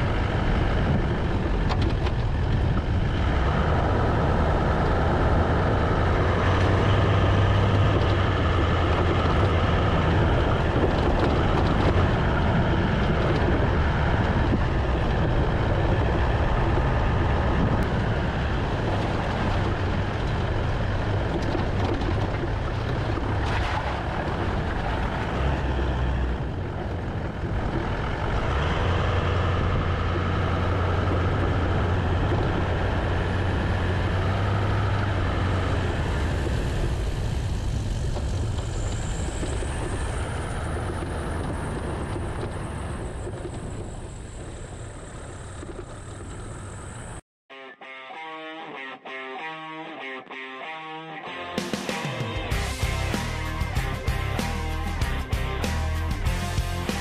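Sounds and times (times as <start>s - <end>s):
car engine drone: 0.0s - 47.2s, 51.3s - 57.0s
tyre and road noise: 0.0s - 47.2s, 50.6s - 57.0s.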